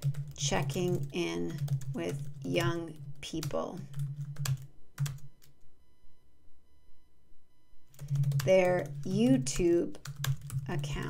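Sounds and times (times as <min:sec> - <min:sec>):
computer keyboard keystrokes: 0:08.0 - 0:09.1, 0:09.8 - 0:11.0.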